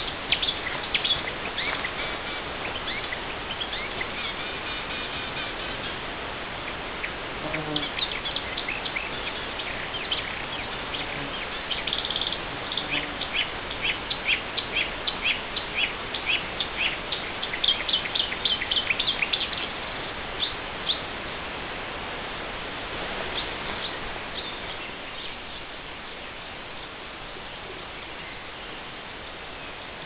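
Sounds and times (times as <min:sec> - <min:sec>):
small birds chirping: 0:00.0 - 0:21.1, 0:23.2 - 0:30.0
steady hiss: 0:00.0 - 0:30.0.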